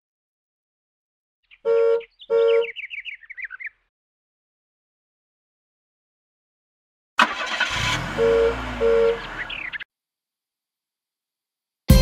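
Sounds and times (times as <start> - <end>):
bird chirps stepping down: 1.4 - 3.8
cartoon horn honking: 7.2 - 9.4.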